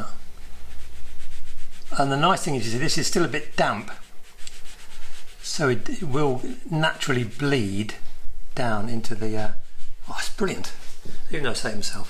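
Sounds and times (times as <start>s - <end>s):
paintbrush rubbing on paper: 0.0s - 8.0s, 8.9s - 12.0s
steady low hum: 0.0s - 12.0s.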